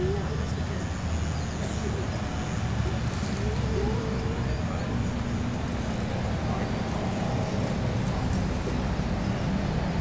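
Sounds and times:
distant road traffic rumble: 0:00.0 - 0:10.0.

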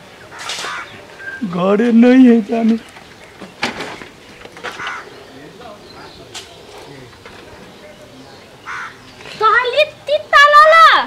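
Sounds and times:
faint outdoor background: 0:00.0 - 0:11.0
crow cawing: 0:00.3 - 0:01.0, 0:04.7 - 0:05.3, 0:08.6 - 0:09.1.

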